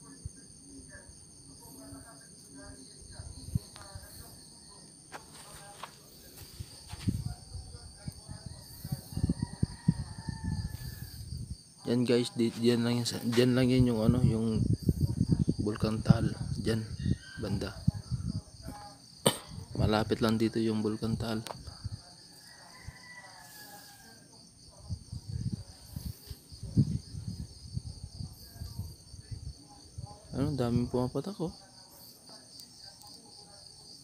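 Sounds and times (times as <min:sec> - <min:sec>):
crickets chirping: 0:00.0 - 0:34.0.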